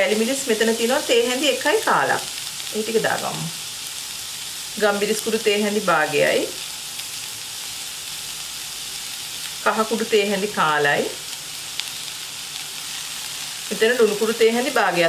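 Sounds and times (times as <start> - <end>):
onions sizzling in hot oil: 0.0 - 15.0.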